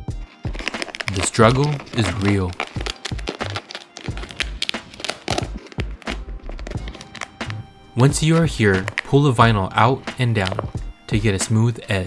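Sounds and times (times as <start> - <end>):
vinyl wrap film crackling: 0.0 - 11.0
background music: 0.0 - 12.0.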